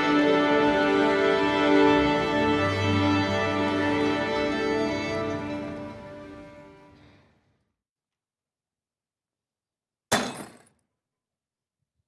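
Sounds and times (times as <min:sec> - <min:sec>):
glass bottle shattering: 0:10.1 - 0:10.7.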